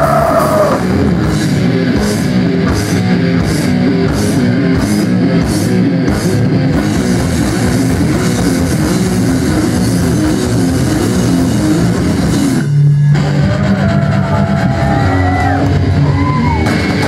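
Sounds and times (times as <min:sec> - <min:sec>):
bass guitar: 0:00.0 - 0:17.0
distorted electric guitars: 0:00.0 - 0:17.0
drums: 0:00.0 - 0:17.0.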